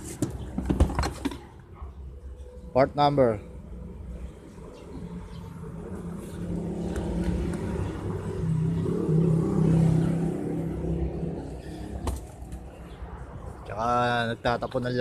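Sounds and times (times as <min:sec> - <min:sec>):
diesel engine rumbling: 0:02.4 - 0:15.0.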